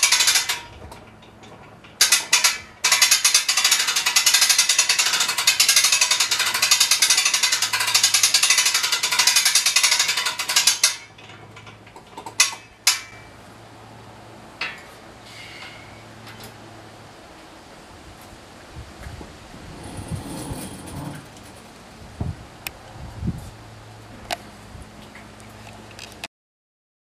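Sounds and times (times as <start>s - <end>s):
rope hoist ratchet clicking: 0.0s - 1.3s, 1.9s - 13.1s.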